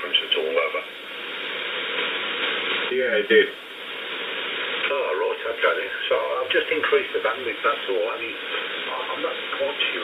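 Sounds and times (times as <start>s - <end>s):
radio band noise hiss: 0.0s - 10.0s.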